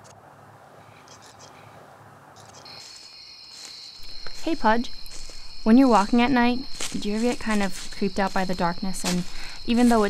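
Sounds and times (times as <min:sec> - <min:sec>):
faint outdoor hiss: 0:00.0 - 0:10.0
crickets chirping: 0:02.4 - 0:10.0.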